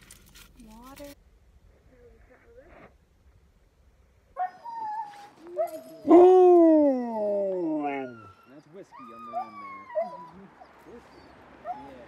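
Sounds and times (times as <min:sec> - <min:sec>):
dogs whining: 0:04.4 - 0:12.0.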